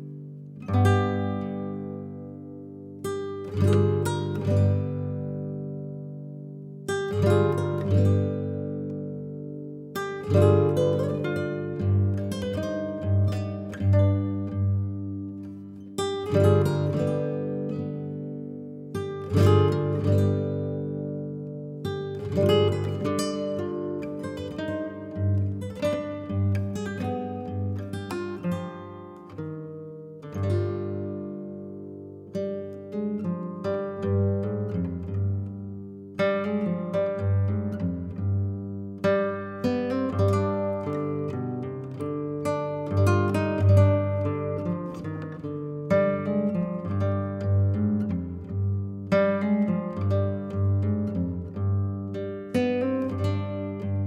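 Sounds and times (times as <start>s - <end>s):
acoustic guitar music: 0.0s - 54.0s.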